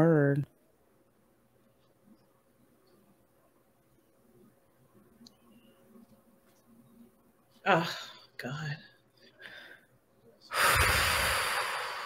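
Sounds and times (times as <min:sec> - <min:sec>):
person breathing heavily: 0:09.2 - 0:09.9, 0:10.5 - 0:12.0.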